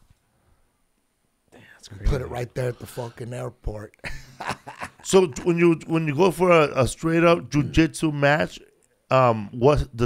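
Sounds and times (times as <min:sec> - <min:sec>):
man speaking: 0:01.6 - 0:10.0.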